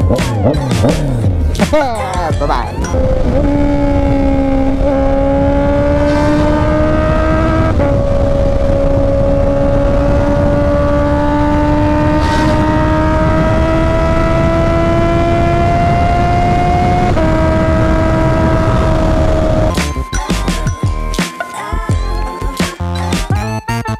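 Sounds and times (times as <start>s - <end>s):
motorcycle engine accelerating: 0.0s - 20.0s
wind noise: 2.4s - 19.8s.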